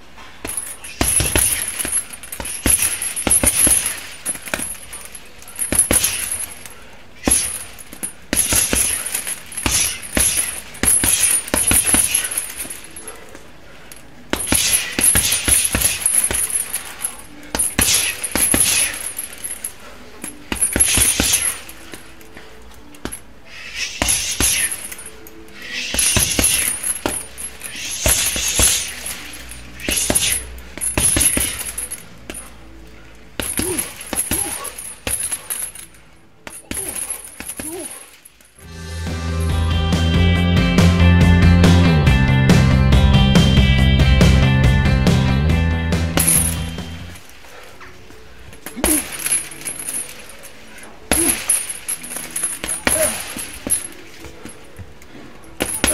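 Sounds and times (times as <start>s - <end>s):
punches on heavy punching bag: 0.4s - 4.8s, 8.3s - 12.4s, 14.3s - 16.6s, 24.0s - 24.8s, 26.0s - 27.3s, 28.0s - 29.0s, 29.8s - 31.8s
metal hardware jangling: 0.4s - 38.6s, 46.2s - 55.9s.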